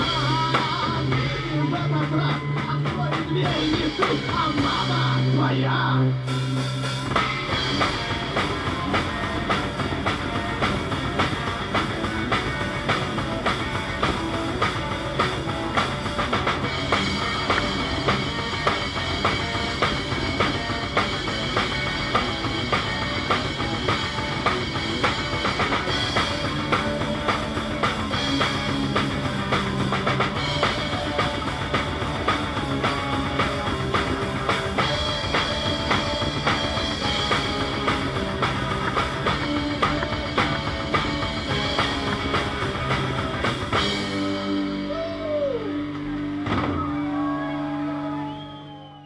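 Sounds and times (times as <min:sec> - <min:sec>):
drums and cymbals: 0:00.0 - 0:05.6, 0:06.2 - 0:49.0
rock band playing: 0:00.0 - 0:49.0.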